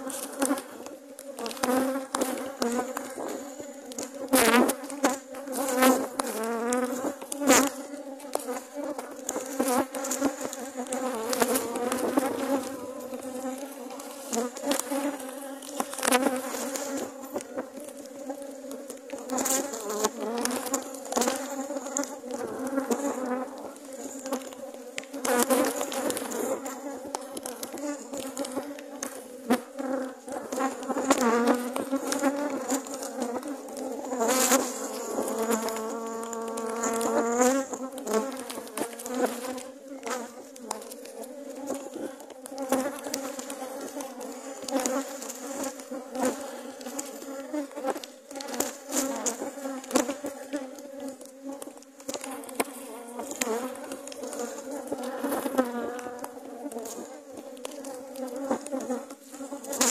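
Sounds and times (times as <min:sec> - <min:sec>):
honeybees buzzing: 0:00.0 - 0:59.9.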